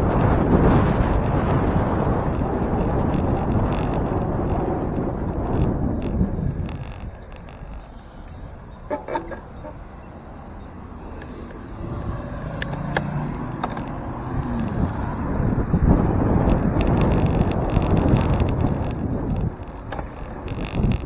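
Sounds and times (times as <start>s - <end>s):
car engine hum: 0.0s - 21.0s
wind buffeting microphone: 0.0s - 21.0s.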